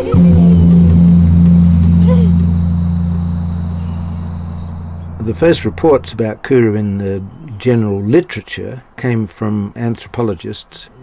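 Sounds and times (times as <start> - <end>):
low steady drone: 0.0 - 6.2.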